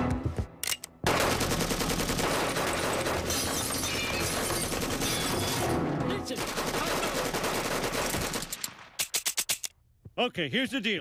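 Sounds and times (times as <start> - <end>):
cartoon machine gun firing: 6.4 - 8.5.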